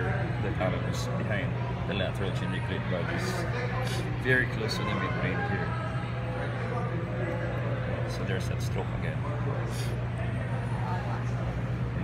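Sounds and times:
faint voices talking: 0.0s - 12.0s
steady low hum: 0.0s - 12.0s.

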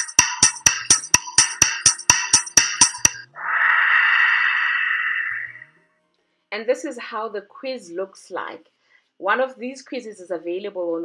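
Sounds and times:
ticking countdown music: 0.0s - 3.3s
long whooshing swell: 3.3s - 5.7s.

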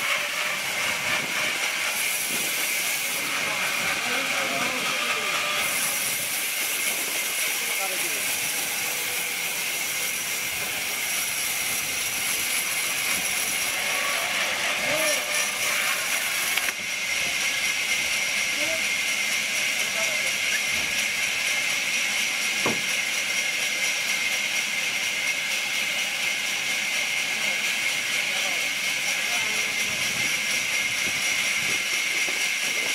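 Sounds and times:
band saw cutting log: 0.0s - 32.9s.

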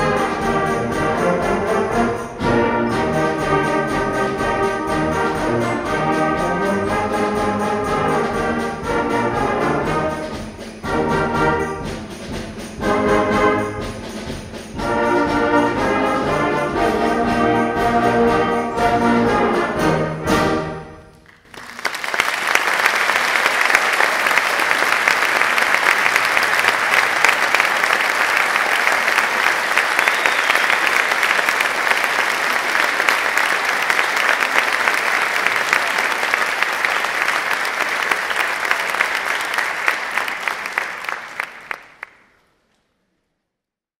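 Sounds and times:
audience applauding: 21.2s - 42.4s.

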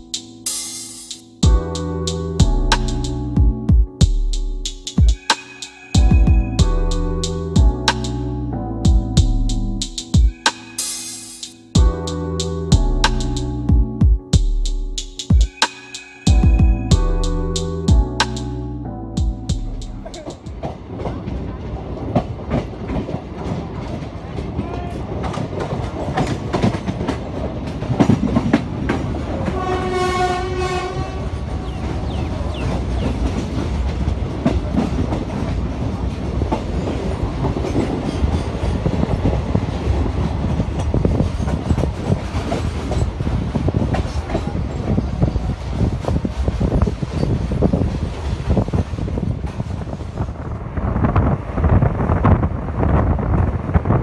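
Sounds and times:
train wheels rumbling: 19.2s - 54.0s
clickety-clack over rail joints: 20.1s - 50.5s
train horn: 29.4s - 33.1s.

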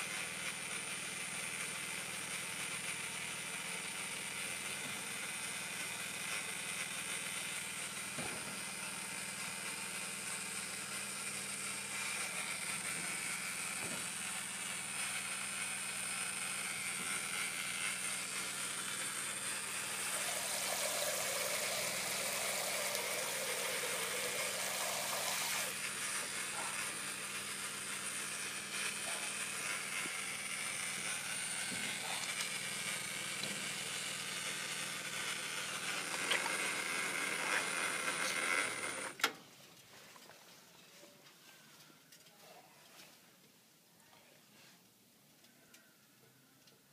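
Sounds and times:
water heater humming: 0.0s - 39.5s
shower spraying into basin: 19.9s - 25.8s.

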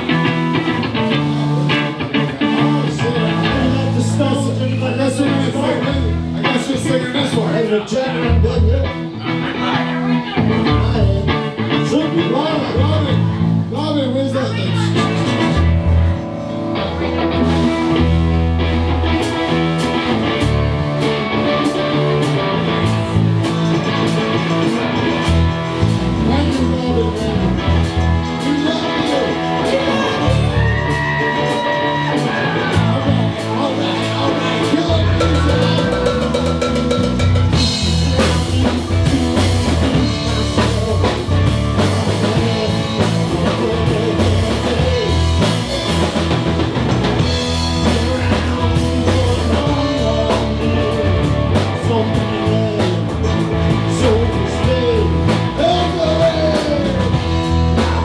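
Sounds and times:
bass guitar: 0.0s - 58.0s
drums: 0.0s - 58.0s
electric guitars: 0.0s - 58.0s
live rock band playing: 0.0s - 58.0s.

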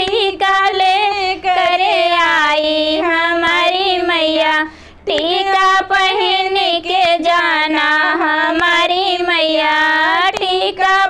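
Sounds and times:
woman singing devotional song: 0.0s - 11.0s.

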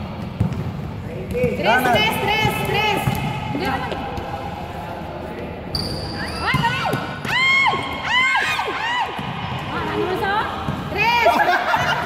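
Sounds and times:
sneakers squeaking on floor: 5.7s - 7.3s.

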